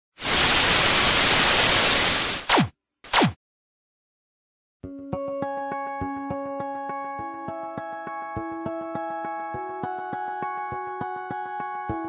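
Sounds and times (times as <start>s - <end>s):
television static hiss: 0.2s - 2.4s.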